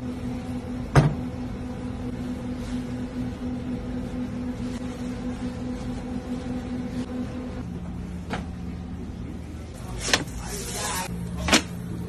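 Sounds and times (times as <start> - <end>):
kitchen equipment humming: 0.0 - 12.0.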